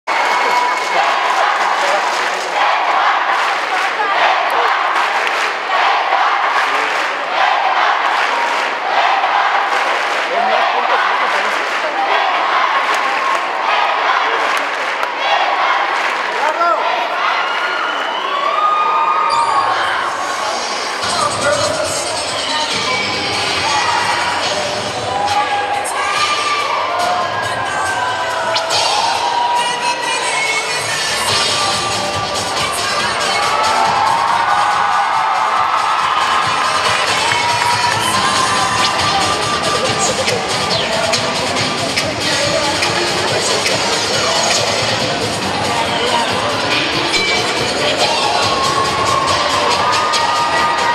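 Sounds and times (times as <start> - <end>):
audience cheering: 0.0 - 41.6, 47.8 - 50.9
children shouting and chanting: 22.4 - 44.4.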